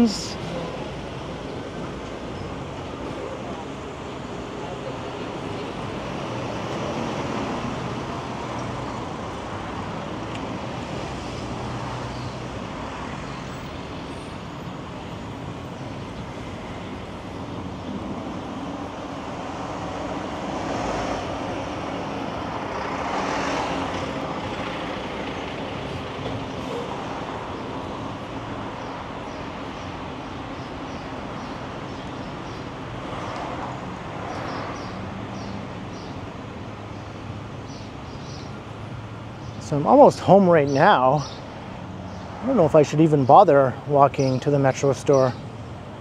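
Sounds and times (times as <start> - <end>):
vehicles driving past: 0.0 - 46.0.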